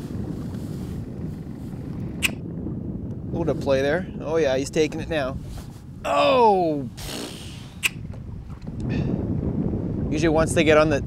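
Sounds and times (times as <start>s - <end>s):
low wind rumble: 0.0s - 11.0s.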